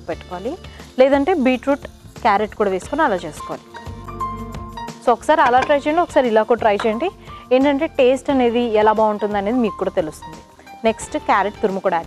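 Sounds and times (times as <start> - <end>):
faint background music: 0.0 - 12.0
woman speaking: 5.1 - 10.1.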